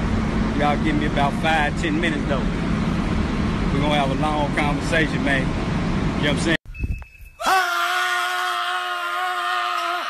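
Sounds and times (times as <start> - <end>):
men yelling: 7.4 - 10.0.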